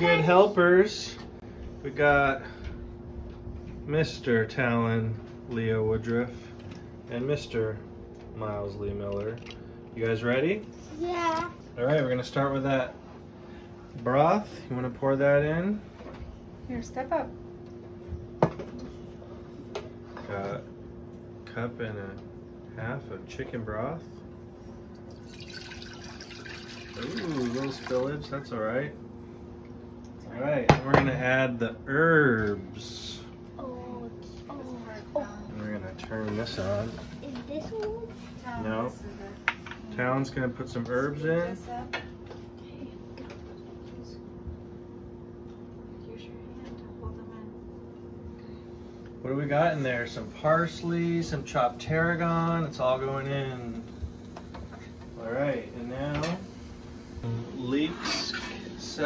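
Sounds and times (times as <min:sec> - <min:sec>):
faint hum: 0:00.0 - 0:59.0
low hum: 0:50.0 - 0:59.0.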